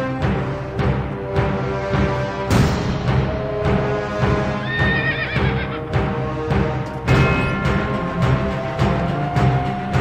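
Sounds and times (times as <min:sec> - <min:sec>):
dramatic soundtrack music: 0:00.0 - 0:10.0
horse whinnying: 0:04.6 - 0:05.9.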